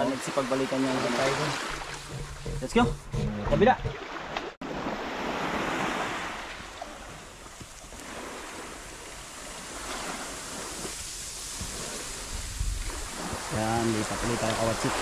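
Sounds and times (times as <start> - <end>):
small waves washing onto sand: 0.0 - 2.2, 3.9 - 15.0
wind on microphone: 8.0 - 15.0.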